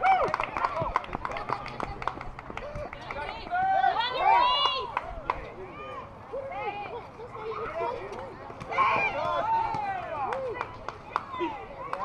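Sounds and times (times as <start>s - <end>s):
spectators shouting and cheering: 0.0s - 1.0s, 2.6s - 12.0s.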